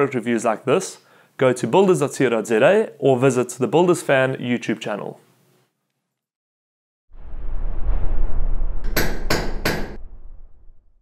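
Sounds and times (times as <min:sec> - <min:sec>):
low rumble: 0:07.1 - 0:11.0.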